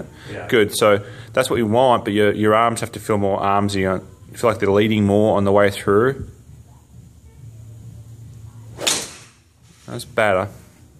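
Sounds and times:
golf club whoosh and strike: 8.8 - 9.4.

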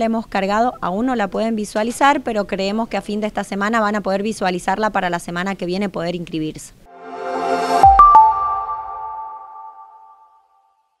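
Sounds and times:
electronic ringing tones: 7.8 - 10.3.

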